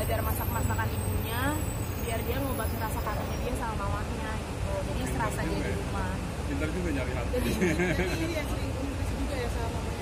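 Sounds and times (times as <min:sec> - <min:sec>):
woman talking: 0:00.0 - 0:06.2, 0:07.9 - 0:10.0.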